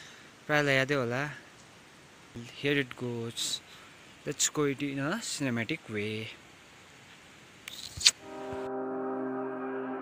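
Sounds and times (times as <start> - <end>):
faint background hiss: 0.0 - 8.8
sharp click: 7.6 - 8.2
slow ambient music: 8.2 - 10.0.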